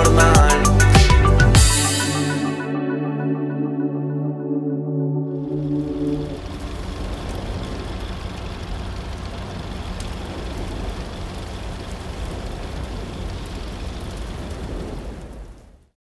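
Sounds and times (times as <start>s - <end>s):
fire rumbling: 5.5s - 16.0s
fire crackling: 5.6s - 15.9s.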